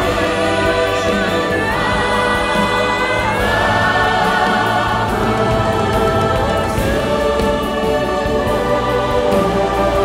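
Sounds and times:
children's choir singing: 0.0 - 10.0
women soloists singing: 0.0 - 10.0.

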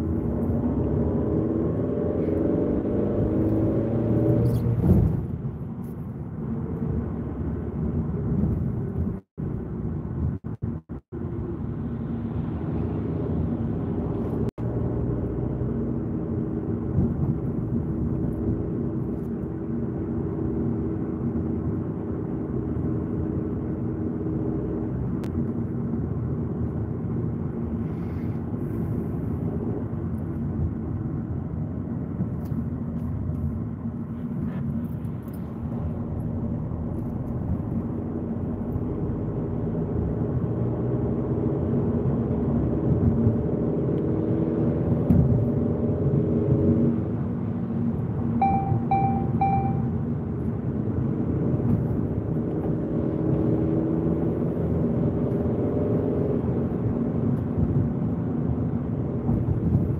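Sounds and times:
car engine hum: 0.0 - 59.9.

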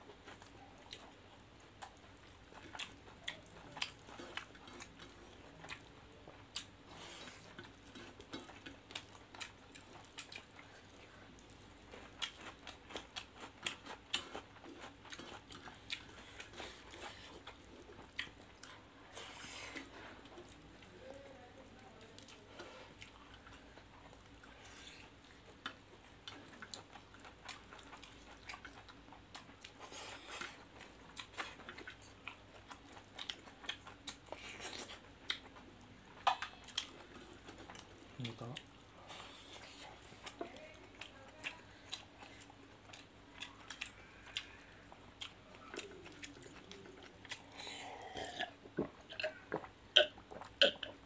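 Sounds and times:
people chewing food: 0.0 - 51.0.

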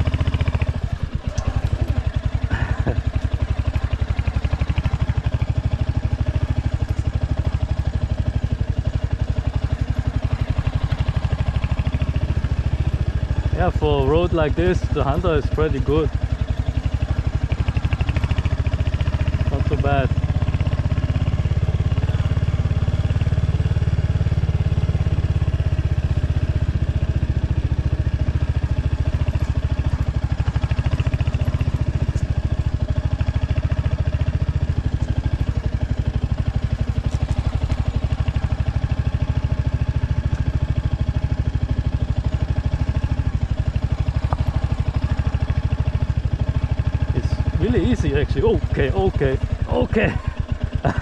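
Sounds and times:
motorcycle engine running: 0.0 - 51.0.

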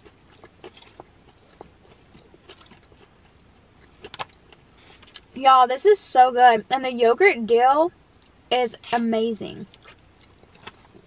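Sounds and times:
chewing salad: 0.0 - 5.3, 9.6 - 11.0.

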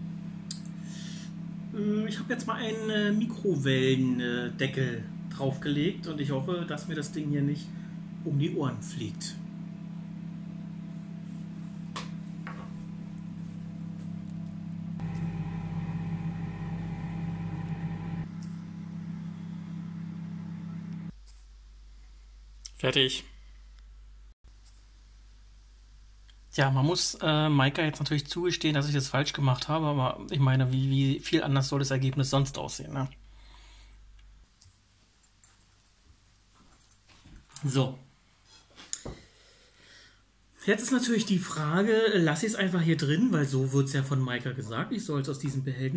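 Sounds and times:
microwave oven humming: 0.0 - 21.1.

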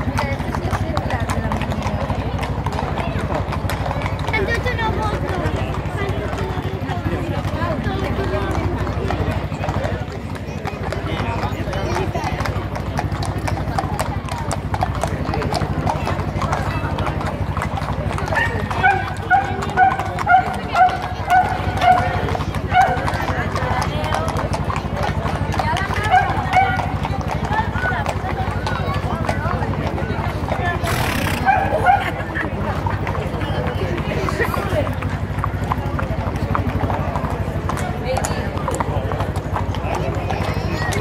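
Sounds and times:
crowd chatter: 0.0 - 41.0
horse hooves clip-clopping on stone: 0.0 - 41.0.

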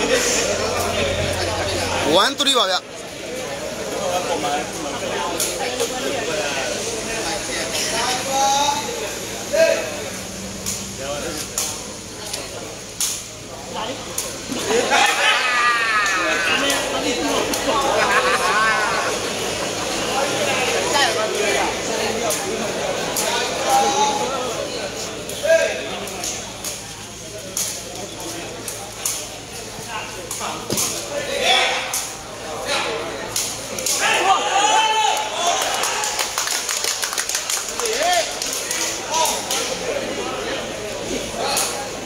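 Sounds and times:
crowd chatter and calls: 0.0 - 42.0
players and crowd shouting: 14.5 - 21.8, 32.6 - 36.4.

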